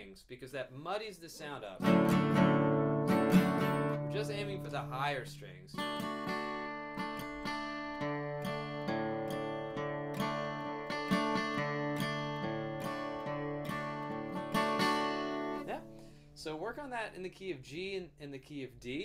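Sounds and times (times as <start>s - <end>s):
acoustic guitar strumming: 1.8s - 16.3s.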